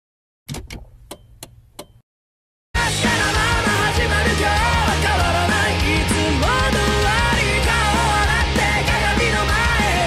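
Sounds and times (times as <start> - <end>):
cassette mechanism clicks: 0.5 - 2.0.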